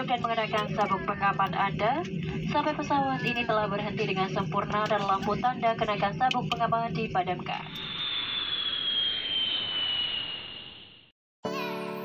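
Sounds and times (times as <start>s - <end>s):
jet engines whining: 0.0s - 11.1s.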